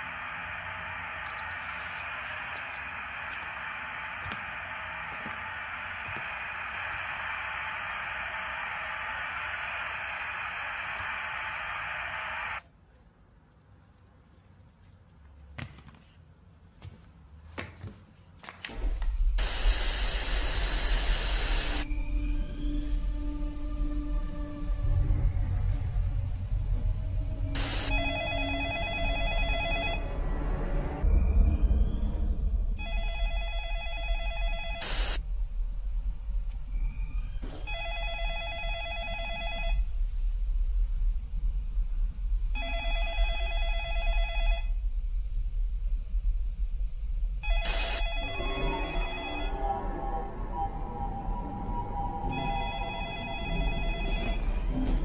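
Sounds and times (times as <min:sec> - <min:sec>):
telephone bell ringing: 0:27.9 - 0:30.1, 0:32.8 - 0:35.0, 0:37.7 - 0:39.8, 0:42.6 - 0:44.8, 0:47.4 - 0:49.8, 0:52.2 - 0:54.7
low steady rumble: 0:39.8 - 0:49.4.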